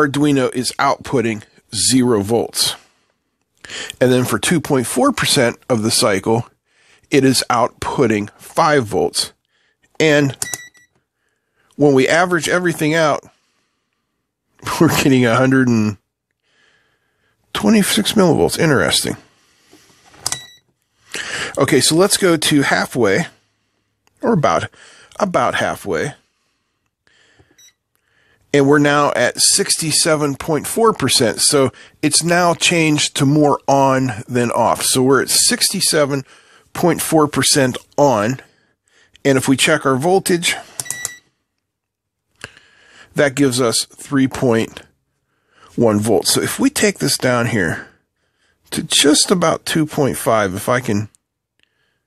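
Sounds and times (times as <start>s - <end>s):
multimeter high beep: 10.4s - 10.9s, 20.3s - 20.6s, 27.6s - 27.8s, 40.8s - 41.2s.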